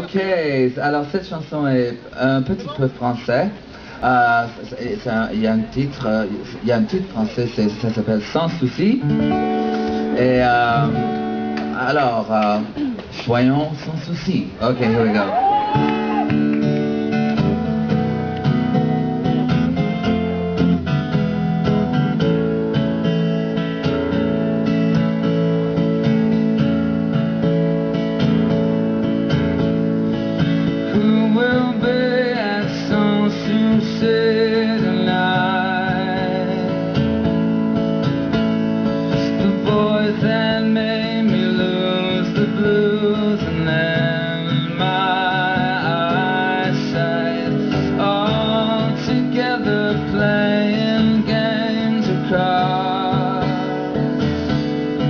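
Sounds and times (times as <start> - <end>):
acoustic guitar strumming: 3.6 - 13.0, 14.6 - 55.0
man singing with vibrato: 30.8 - 37.0, 39.1 - 54.6.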